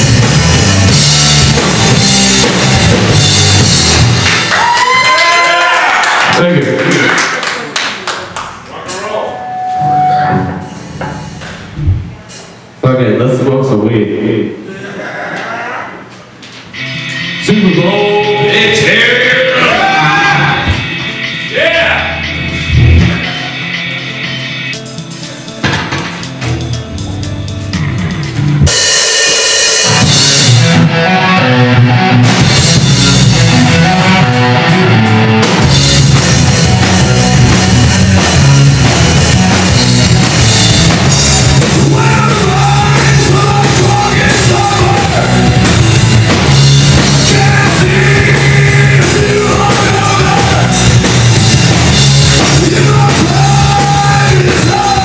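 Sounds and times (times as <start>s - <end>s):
hard rock band playing live: 0.0s - 4.8s, 8.9s - 11.7s, 16.7s - 55.0s
short held tone: 9.0s - 11.4s
cymbal crash: 28.7s - 30.8s.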